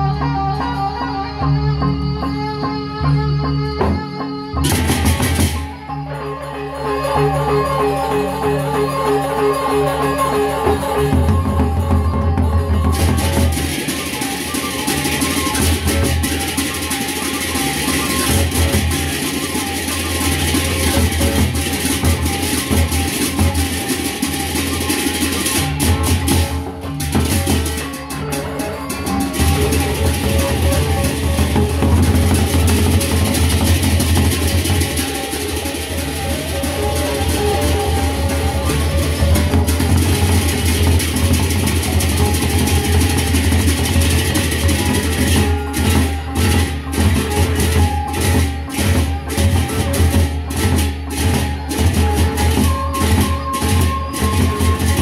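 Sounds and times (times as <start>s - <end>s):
large drums beaten in steady rhythm: 3.8s - 5.9s, 7.2s - 55.0s.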